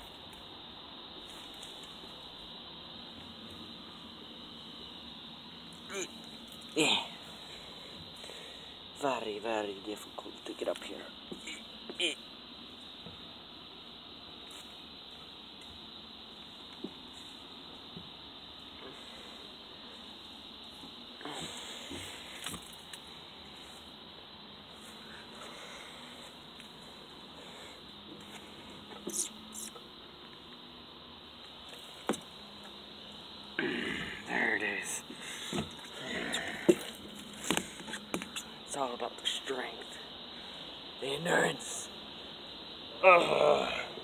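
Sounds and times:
outdoor background hiss: 0.0s - 44.0s.

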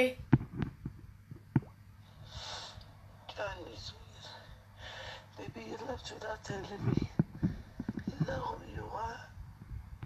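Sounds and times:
breath: 2.1s - 2.9s, 4.2s - 5.3s.

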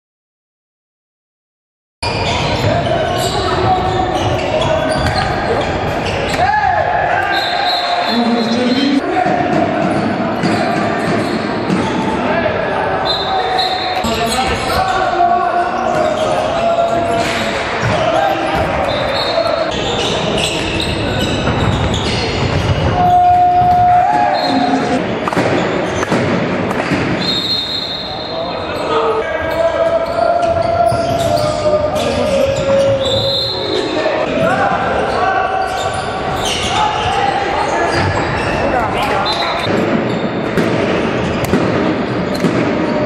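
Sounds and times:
shoes squeaking: 2.0s - 6.5s, 18.0s - 26.2s
handball game noise: 2.0s - 43.0s
players' voices echoing: 2.0s - 43.0s
whistle-like tone: 27.2s - 28.5s.

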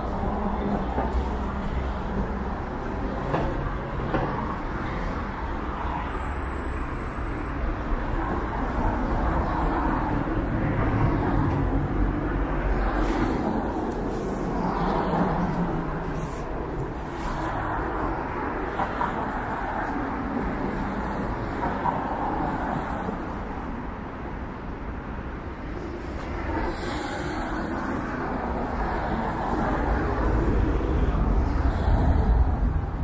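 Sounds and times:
cars passing: 0.0s - 33.0s.

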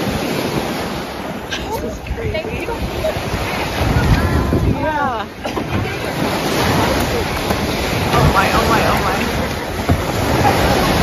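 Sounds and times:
waves breaking on a beach: 0.0s - 11.0s
wind buffeting microphone: 0.0s - 11.0s.

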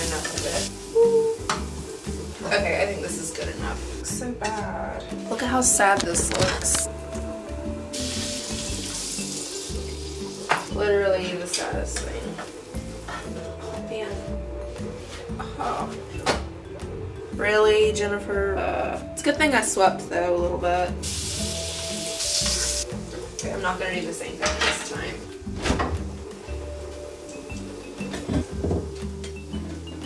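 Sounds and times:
food sizzling in a frying pan: 0.0s - 4.2s, 7.9s - 13.5s, 20.9s - 25.3s
background music: 0.0s - 30.0s.

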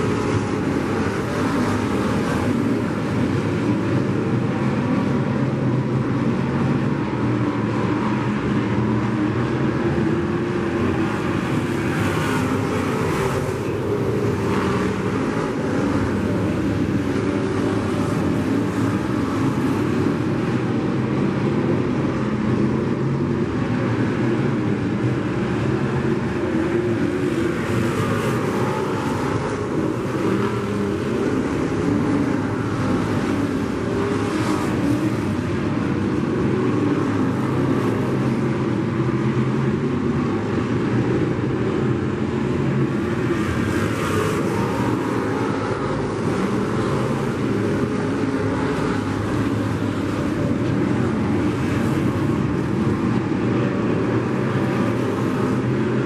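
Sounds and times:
race car engines droning: 0.0s - 56.0s.

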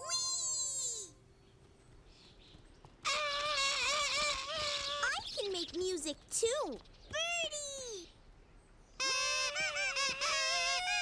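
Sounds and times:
plastic toy horn honking: 9.0s - 11.0s.

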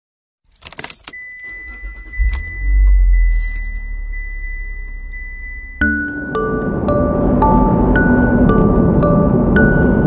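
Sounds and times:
car keys jangling: 0.5s - 4.4s
car engine starting and rumbling: 0.5s - 10.0s
high electronic tone: 1.4s - 10.0s.

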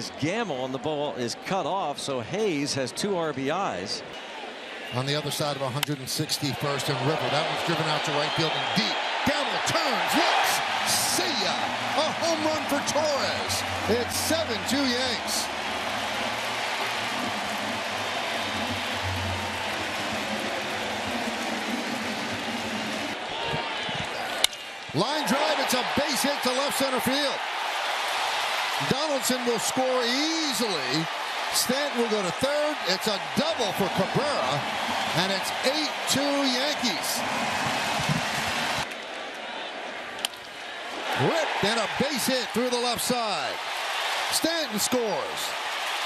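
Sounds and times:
ballpark crowd noise: 0.0s - 46.0s
stadium crowd cheering: 4.1s - 46.0s.

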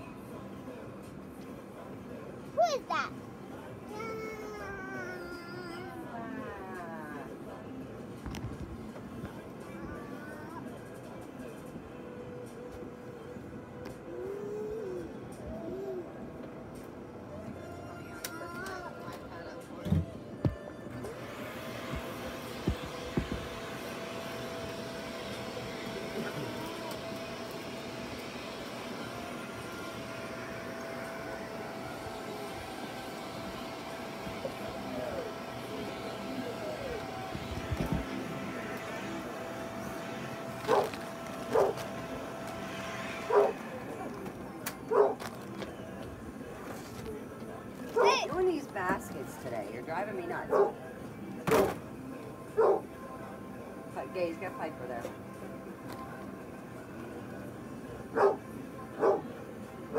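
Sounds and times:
steady hum: 20.0s - 59.9s.

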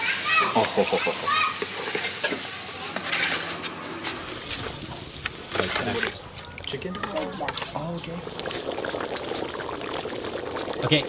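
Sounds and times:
meat sizzling in a metal pot: 0.0s - 6.0s, 7.0s - 11.0s.

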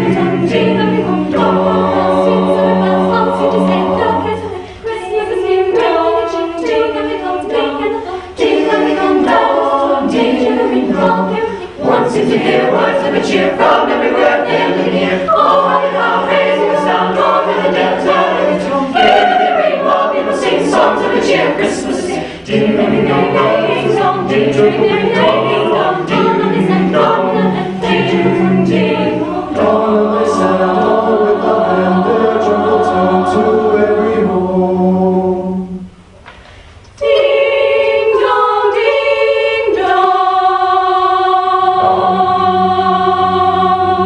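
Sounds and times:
a cappella group singing: 0.0s - 44.0s.

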